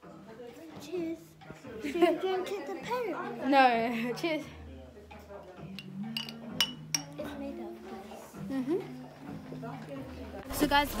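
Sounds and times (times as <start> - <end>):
faint glass tap: 5.8 - 7.2
glass bottles clinking: 5.8 - 7.2.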